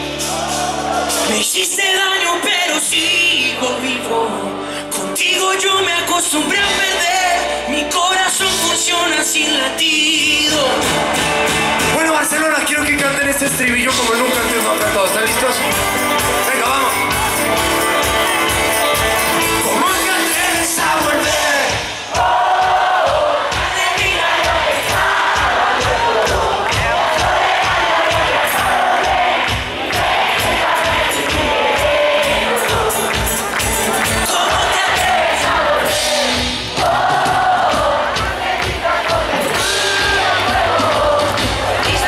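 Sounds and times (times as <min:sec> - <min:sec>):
crowd singing along: 0:00.0 - 0:12.0, 0:14.0 - 0:42.0
live pop band playing: 0:00.0 - 0:42.0.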